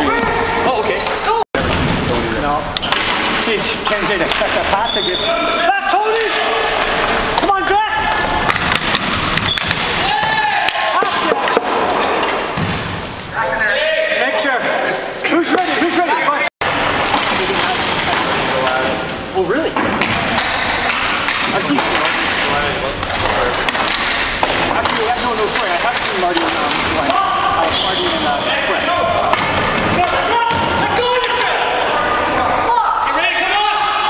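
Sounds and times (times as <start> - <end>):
hockey sticks clacking: 0.1 - 12.7, 16.6 - 32.1
players shouting: 4.0 - 12.5, 20.2 - 34.0.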